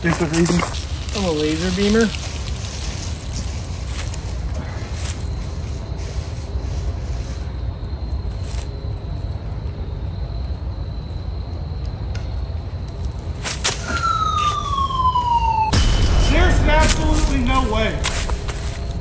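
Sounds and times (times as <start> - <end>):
steady low rumble: 0.0 - 13.4, 15.7 - 19.0
whistle-like tone sliding downward: 13.8 - 17.7.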